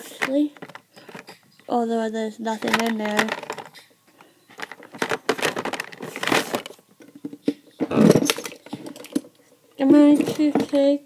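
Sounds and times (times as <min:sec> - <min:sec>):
plastic containers clicking: 0:00.0 - 0:01.4, 0:02.4 - 0:09.4.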